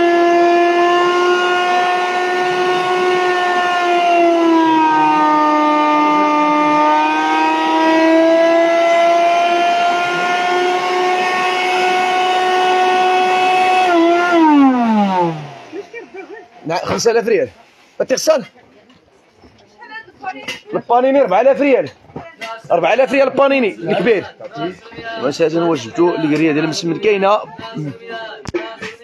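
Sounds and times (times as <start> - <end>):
blender motor whining: 6.0 - 16.4
motor spinning down: 6.4 - 16.7.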